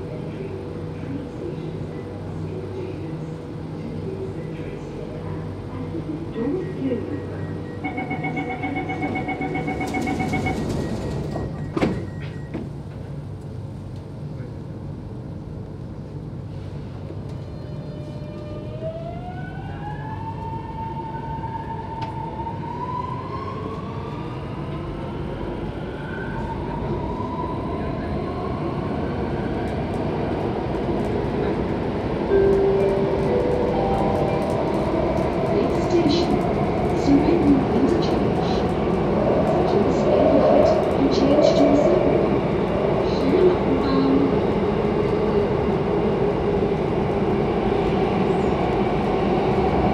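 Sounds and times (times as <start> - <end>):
train running rumble: 0.0 - 18.4, 29.2 - 49.9
door-closing warning beeps: 7.4 - 12.7
train doors shutting: 7.6 - 13.1.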